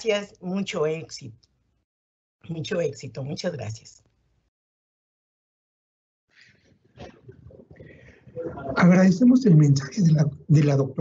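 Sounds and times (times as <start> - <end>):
faint room noise: 6.3 - 11.0.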